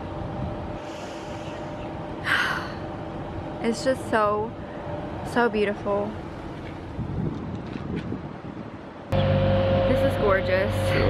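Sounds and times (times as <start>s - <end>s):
mechanical hum with whine: 0.0s - 5.3s, 9.1s - 11.0s
wind on microphone: 5.9s - 11.0s.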